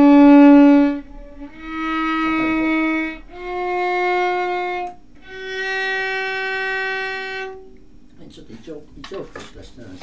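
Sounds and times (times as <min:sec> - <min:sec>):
violin long note: 0:00.0 - 0:07.8.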